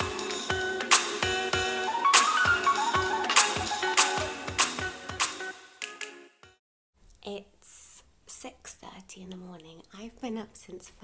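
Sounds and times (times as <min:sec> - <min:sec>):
woman talking in hushed voice: 0:07.2 - 0:11.0.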